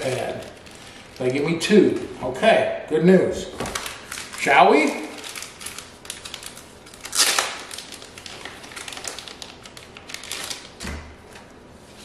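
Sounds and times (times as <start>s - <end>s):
packaging crinkling and rustling: 0.0s - 2.2s, 3.6s - 12.0s.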